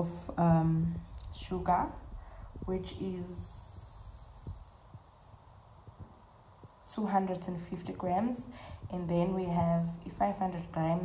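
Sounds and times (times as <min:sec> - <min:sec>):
faint hiss: 0:00.0 - 0:11.0
soft low taps: 0:02.2 - 0:07.0.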